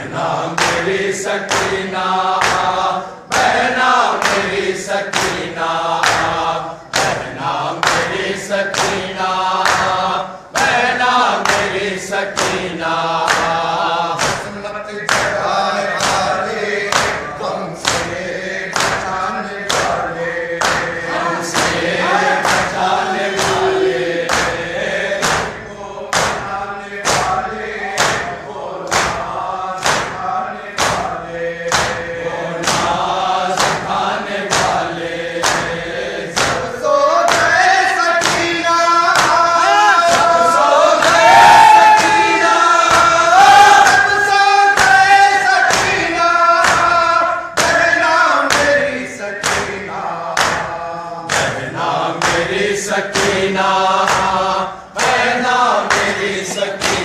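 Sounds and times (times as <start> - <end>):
men chanting in unison: 0.0 - 57.0.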